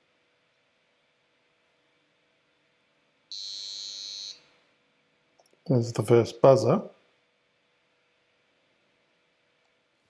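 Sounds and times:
high-pitched buzzer beep: 3.3s - 4.4s.

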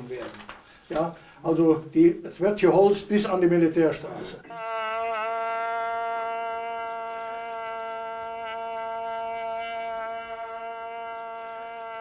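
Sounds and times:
hand-held horn long note: 4.5s - 12.0s.

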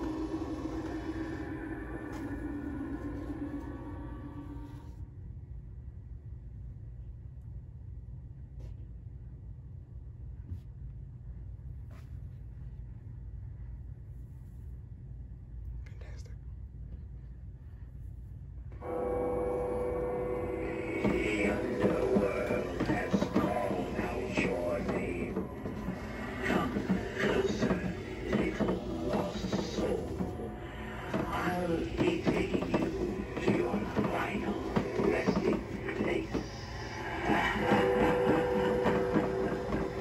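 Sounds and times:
droning musical tone: 0.0s - 5.1s, 18.7s - 40.0s
low steady rumble: 0.0s - 18.9s
steady hum: 0.0s - 40.0s.

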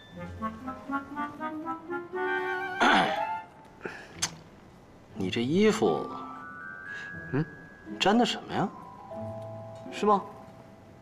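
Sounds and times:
man clearing his throat: 2.8s - 3.3s.

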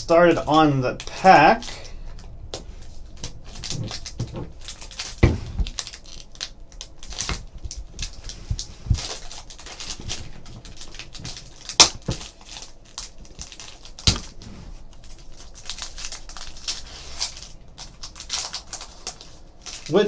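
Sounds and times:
wrapper tearing and crinkling: 2.8s - 20.0s.

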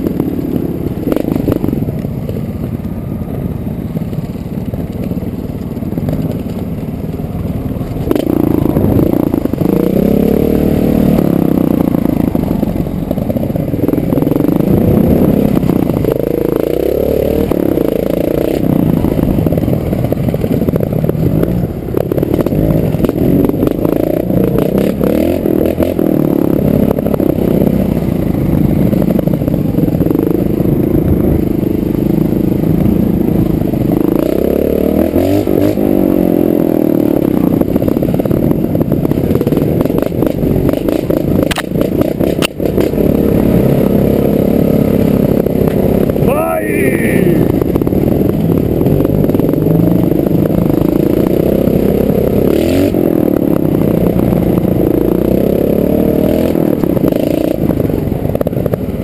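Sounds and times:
motorcycle engine revving: 0.0s - 59.0s
motorcycle clattering over rocks: 4.0s - 9.8s, 37.5s - 43.0s.

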